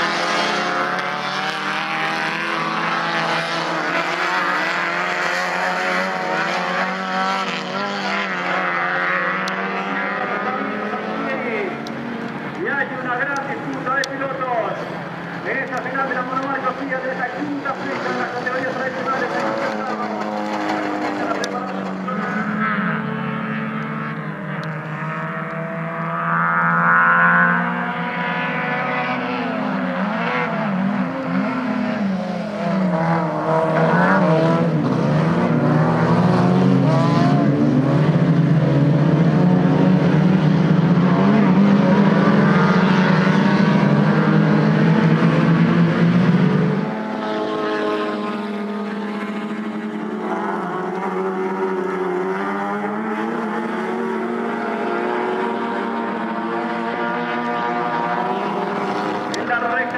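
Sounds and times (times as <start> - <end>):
race car engines at full throttle: 0.0 - 59.9.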